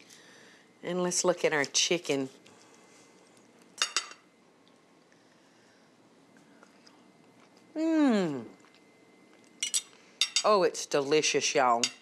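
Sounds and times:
cutlery clinking on plate: 9.6 - 10.5.

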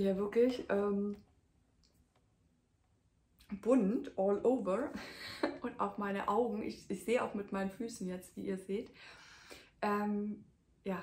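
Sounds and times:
woman speaking: 0.0 - 1.3, 3.4 - 9.0, 9.8 - 11.0.

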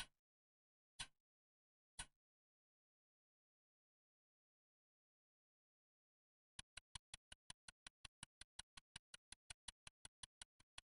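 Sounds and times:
fast clock ticking: 6.6 - 10.9.

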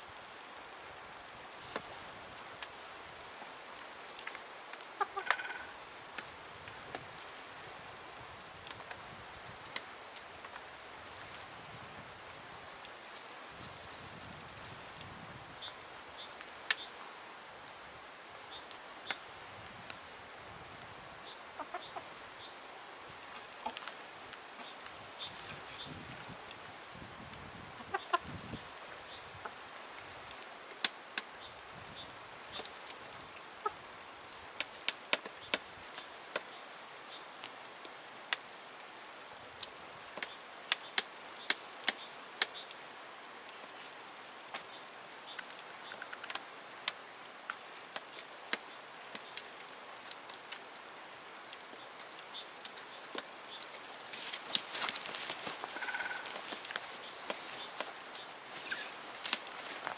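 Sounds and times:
beaks pecking on wood: 3.4 - 7.8, 34.4 - 38.5, 39.6 - 43.0, 43.6 - 50.8, 51.5 - 59.9
chickens clucking: 4.9 - 5.8, 21.5 - 22.8, 27.8 - 28.6, 29.2 - 29.6, 33.6 - 33.8, 55.2 - 59.0.

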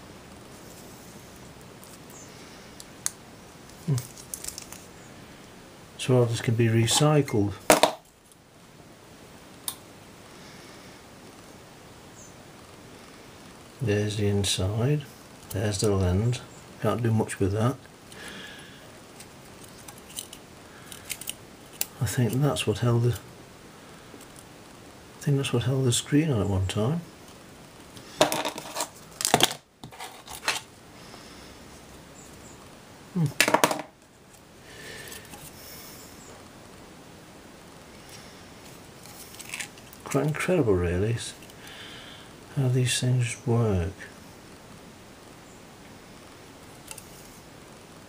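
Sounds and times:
fingers handling circuit board: 19.1 - 22.4, 28.2 - 30.7.

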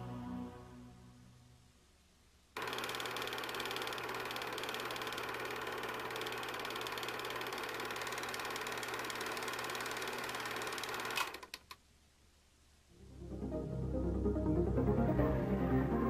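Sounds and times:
loud steady buzz with rattle: 2.6 - 11.6.

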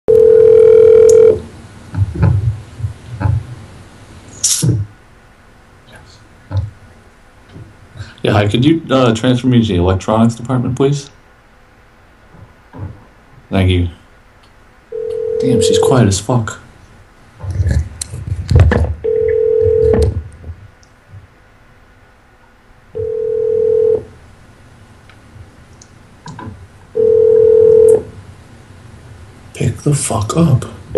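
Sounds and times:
telephone line tone: 0.1 - 1.5, 14.9 - 16.0, 19.0 - 20.2, 23.0 - 24.1, 27.0 - 28.1.

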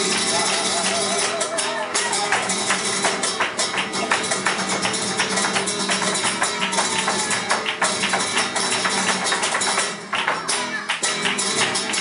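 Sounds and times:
cajon drumming: 0.0 - 12.0
flamenco footwork: 0.0 - 12.0
flamenco guitar: 0.0 - 12.0
rhythmic hand clapping: 0.0 - 12.0.

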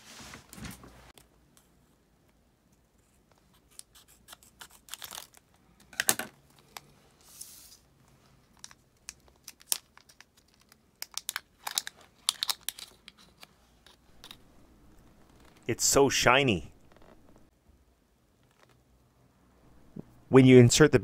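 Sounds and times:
plastic packaging crackling and tearing: 4.3 - 5.6, 8.6 - 13.4.

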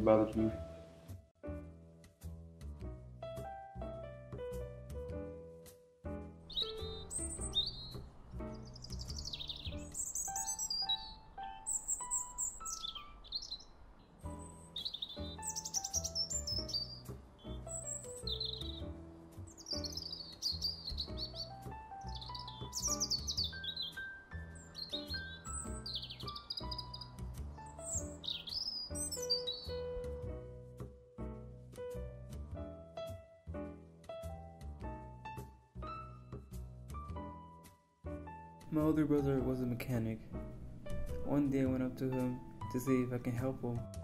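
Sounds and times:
soft piano music: 0.0 - 44.0
small birds chirping: 6.4 - 30.3, 38.7 - 43.9.

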